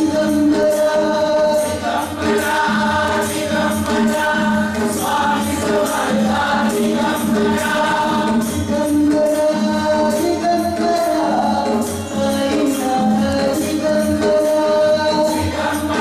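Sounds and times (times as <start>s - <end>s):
congregation singing a hymn: 0.0s - 11.8s, 12.4s - 16.0s
jingling percussion: 0.0s - 16.0s.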